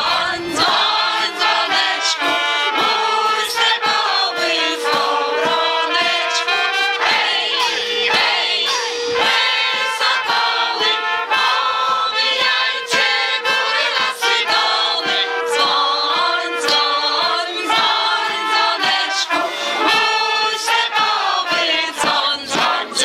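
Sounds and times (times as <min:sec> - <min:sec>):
choir singing in unison: 0:00.0 - 0:23.0
steady beat: 0:00.0 - 0:23.0.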